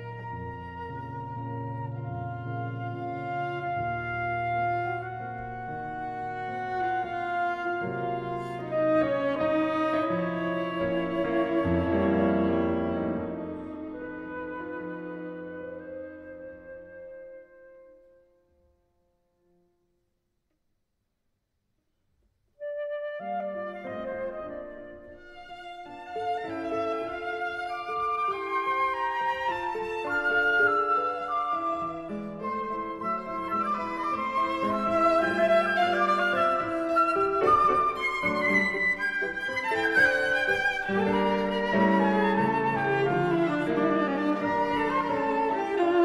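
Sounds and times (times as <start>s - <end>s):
viola playing: 0.0s - 17.2s, 22.6s - 46.0s
flute playing: 0.0s - 18.3s, 22.6s - 46.0s.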